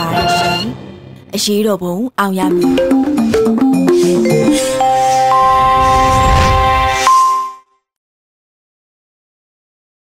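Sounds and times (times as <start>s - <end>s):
bright chime: 4.0s - 7.6s.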